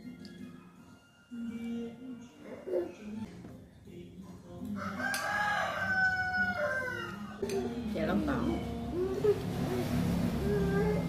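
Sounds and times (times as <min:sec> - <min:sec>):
rooster crowing: 0:04.7 - 0:07.4.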